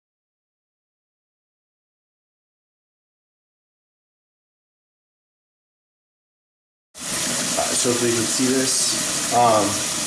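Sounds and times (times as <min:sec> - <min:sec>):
tap water running in sink: 0:07.0 - 0:10.0
man speaking: 0:07.6 - 0:09.8.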